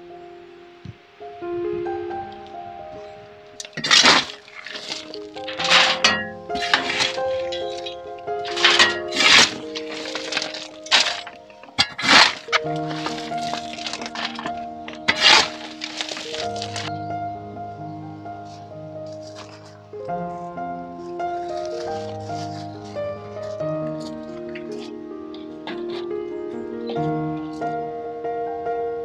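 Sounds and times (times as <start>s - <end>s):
background music: 0.0s - 29.0s
garden tool scraping wood chips: 3.6s - 16.9s, 21.4s - 23.0s.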